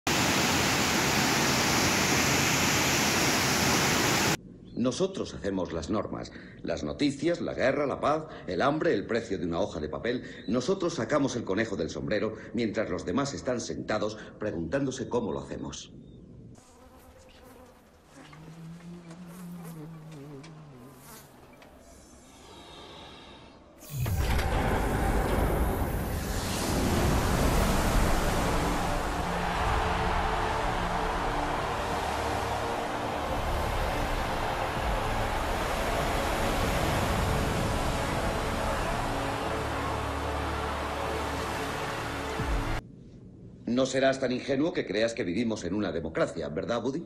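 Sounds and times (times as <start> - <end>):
waterfall rushing: 0.1 - 4.4, 24.9 - 42.8
fly buzzing: 16.6 - 23.1, 26.5 - 41.7.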